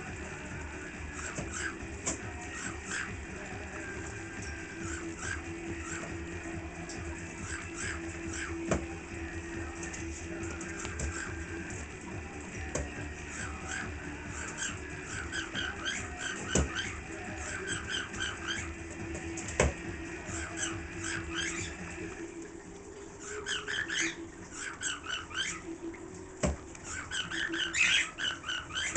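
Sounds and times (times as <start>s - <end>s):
parakeet chirping: 0.0s - 22.2s, 23.0s - 28.9s.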